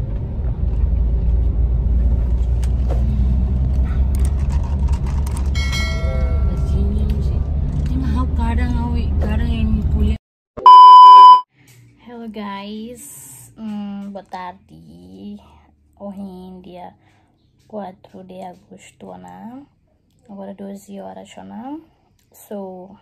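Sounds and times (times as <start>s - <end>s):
loud electronic beep: 10.6s - 11.4s.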